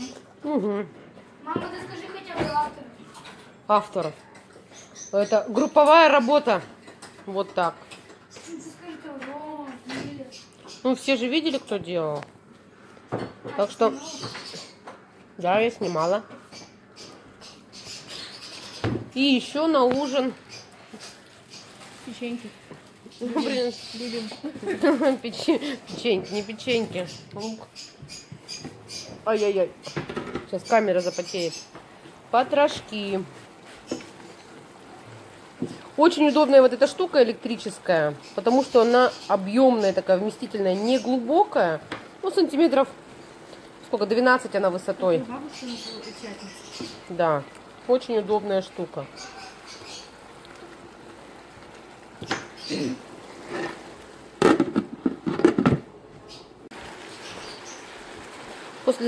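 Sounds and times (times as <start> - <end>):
food frying: 19.2 - 59.0
spatula scraping frying pan: 53.3 - 54.0.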